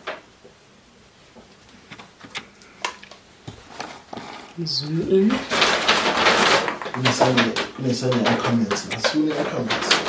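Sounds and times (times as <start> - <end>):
faint steady hum: 0.0 - 10.0
clicks and taps of handled objects: 6.6 - 10.0.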